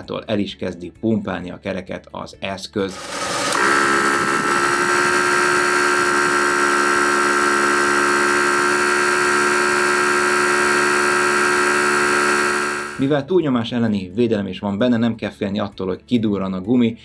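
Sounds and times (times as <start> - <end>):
electric tyre inflator humming: 2.9 - 13.0.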